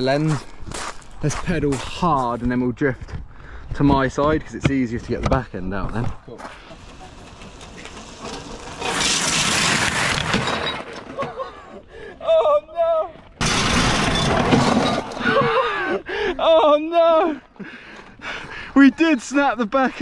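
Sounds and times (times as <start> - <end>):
tyres skidding on gravel: 6.4 - 11.4, 13.4 - 15.6.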